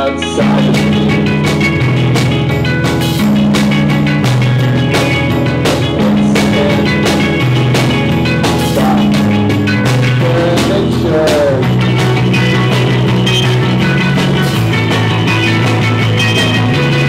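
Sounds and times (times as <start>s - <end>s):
electric guitars and bass: 0.0s - 17.0s
drum kit hits: 0.4s - 17.0s.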